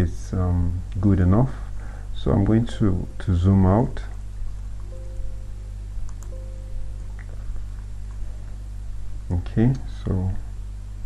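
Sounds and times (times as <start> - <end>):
low electrical hum: 0.0 - 11.0
faint held tones: 2.2 - 8.9
faint clicks: 6.0 - 6.4.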